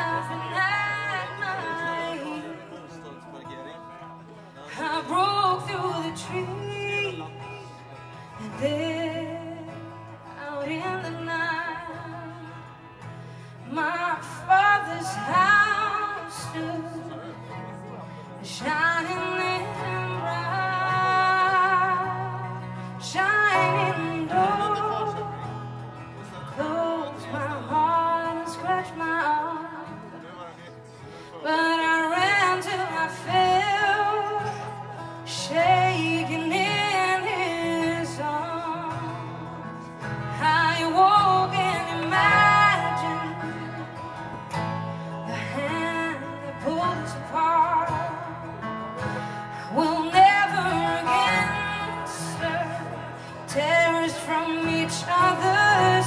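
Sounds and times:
woman singing: 0.0 - 2.7, 4.7 - 17.3, 18.4 - 25.8, 26.5 - 30.0, 31.4 - 56.0
acoustic guitar: 0.0 - 56.0.

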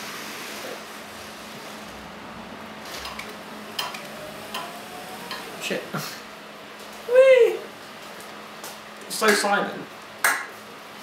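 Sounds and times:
room heater hum: 0.0 - 11.0.

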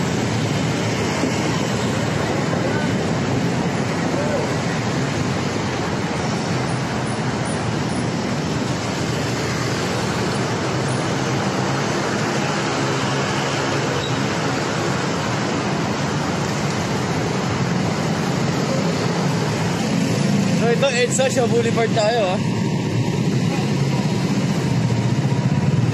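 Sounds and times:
city traffic noise: 0.0 - 25.9
road noise rushing: 0.0 - 25.9.

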